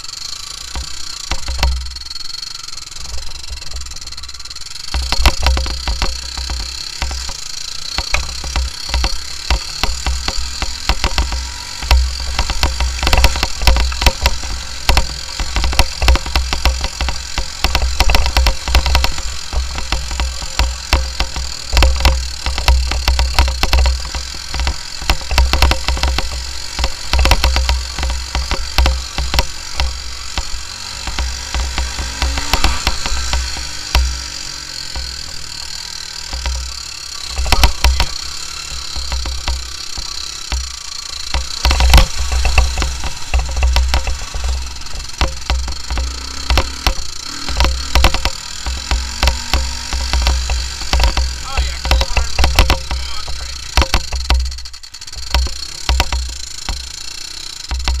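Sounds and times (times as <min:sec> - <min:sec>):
knocks and rattles of vehicle: 0:00.0 - 0:58.0
quad bike engine running: 0:00.0 - 0:58.0.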